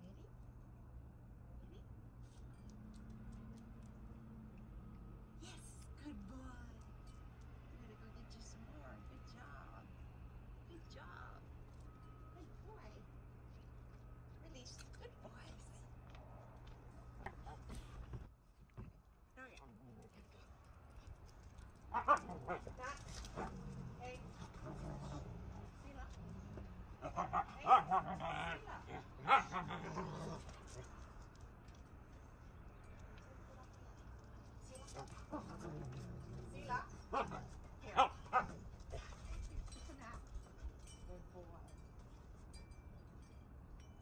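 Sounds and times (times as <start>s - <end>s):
dog howling and barking: 27.0s - 30.1s.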